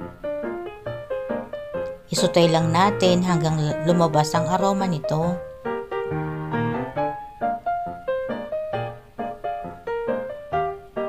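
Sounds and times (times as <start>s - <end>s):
piano melody: 0.0s - 11.0s.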